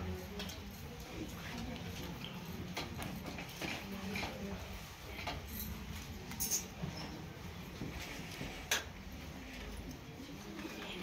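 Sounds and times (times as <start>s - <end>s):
metal spoon clinking steel bowl: 5.6s - 6.8s.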